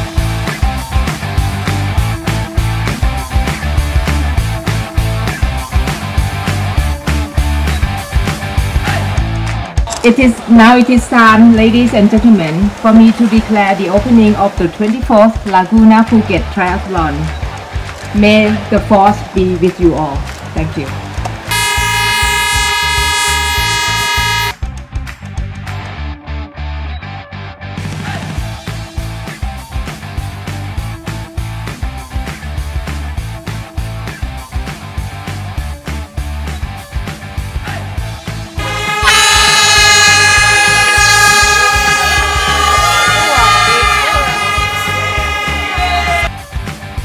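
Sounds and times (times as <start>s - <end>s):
music with steady beat: 0.0s - 9.8s, 28.4s - 47.0s
air horn blast: 21.5s - 24.6s, 38.6s - 46.3s.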